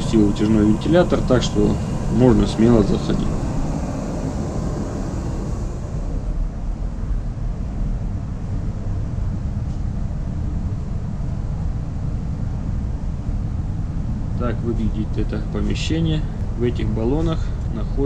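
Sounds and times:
airy hiss: 0.0s - 6.7s
exhaust fan running: 0.0s - 18.0s
ventilation and machinery drone: 0.0s - 18.0s.

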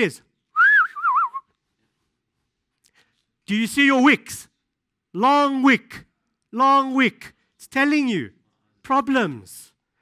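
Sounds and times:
man whistling: 0.5s - 1.5s.

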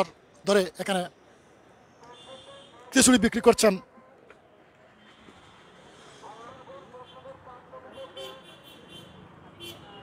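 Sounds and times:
traffic: 0.0s - 10.0s
vehicle horn: 2.0s - 3.0s, 7.0s - 10.0s.

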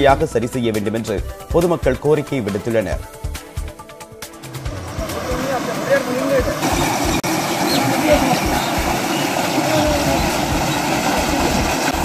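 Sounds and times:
people talking: 0.0s - 3.0s, 4.9s - 6.8s, 7.7s - 11.7s
flowing water rushing: 4.3s - 12.0s.

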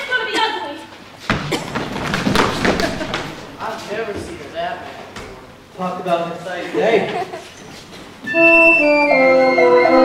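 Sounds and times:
feet thudding on wooden stage: 1.2s - 3.6s.

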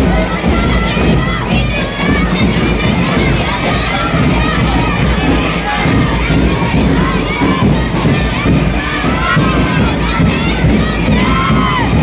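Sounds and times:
children shouting: 0.0s - 12.0s.

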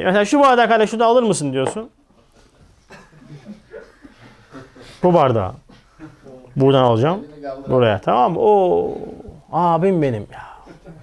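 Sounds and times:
man breathing: 3.9s - 5.0s
man mumbling: 8.4s - 11.0s.

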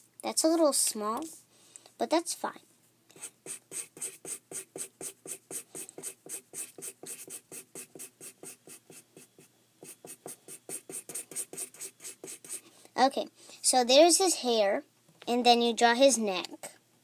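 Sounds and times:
marker scribbling on paper: 3.2s - 12.6s.

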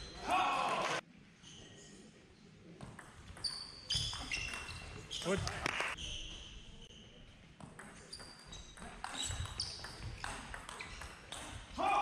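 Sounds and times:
shoes squeaking on floor: 3.3s - 11.7s.

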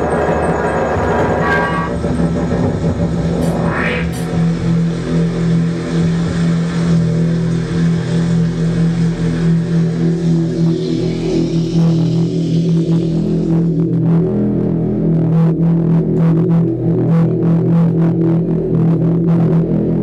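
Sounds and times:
synthesizer drone: 0.0s - 20.0s
noisy rising sweep: 2.3s - 13.9s.

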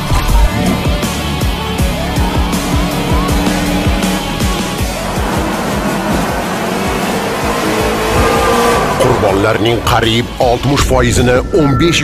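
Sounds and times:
car engine revving: 0.0s - 10.9s.

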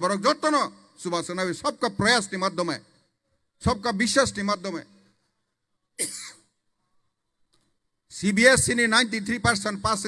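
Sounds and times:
man coughing: 6.0s - 6.5s.

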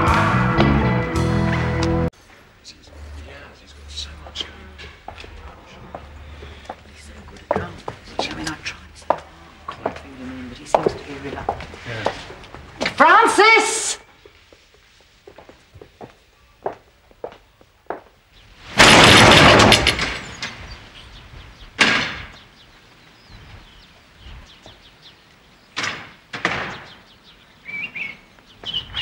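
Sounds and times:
birds chirping faintly: 2.6s - 12.5s, 14.0s - 18.6s, 20.1s - 29.0s
loud crash: 18.6s - 20.7s
door slamming: 18.8s - 20.6s, 25.8s - 27.0s.

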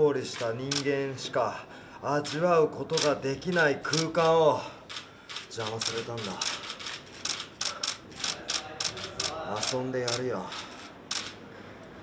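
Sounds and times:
camera shutters clicking: 0.3s - 0.9s, 2.9s - 4.2s, 4.9s - 11.4s.

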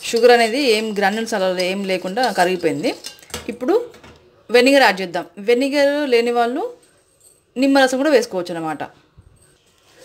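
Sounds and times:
spoon clinking steel bowl: 0.0s - 3.6s
woman talking: 7.6s - 9.0s.

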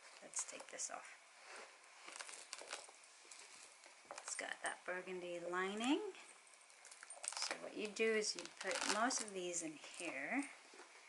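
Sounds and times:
bag rustling and scraping: 1.3s - 4.4s, 8.2s - 10.3s.

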